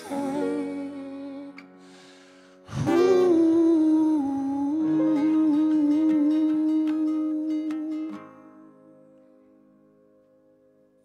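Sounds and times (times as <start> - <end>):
person humming a held note: 0.0 - 1.8, 2.7 - 8.6
soft guitar accompaniment: 0.0 - 11.0.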